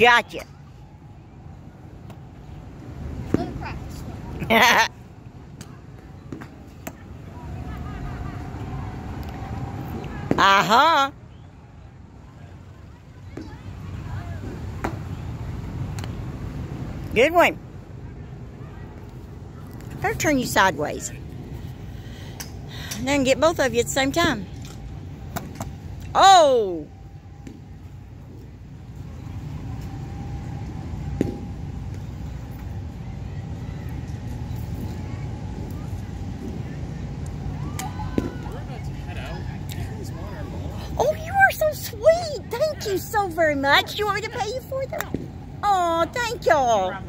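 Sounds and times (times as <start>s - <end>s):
low rumble of wind: 0.0s - 47.0s.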